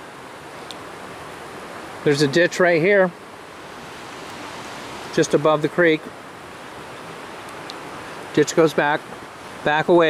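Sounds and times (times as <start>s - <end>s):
creek water rushing: 0.0s - 10.0s.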